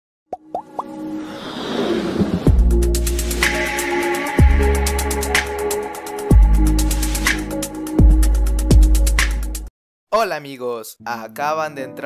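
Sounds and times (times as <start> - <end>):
quick rising pops: 0.6 - 3.5
swelling riser effect: 0.8 - 5.0.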